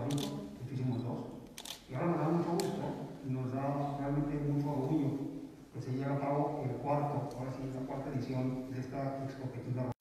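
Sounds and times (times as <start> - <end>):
camera shutter clicks: 0.0 - 0.4, 1.5 - 1.9
man speaking into a microphone: 0.0 - 10.0.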